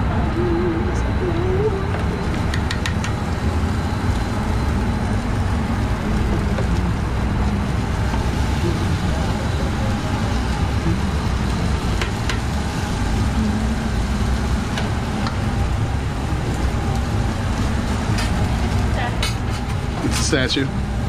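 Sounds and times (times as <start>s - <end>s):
kitchen equipment droning: 0.0s - 21.0s
tongs and utensils clicking: 2.5s - 3.2s.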